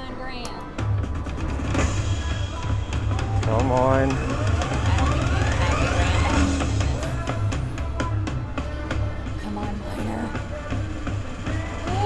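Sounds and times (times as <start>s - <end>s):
low bass game music: 0.8s - 12.0s
rising electronic sweep: 4.0s - 7.0s.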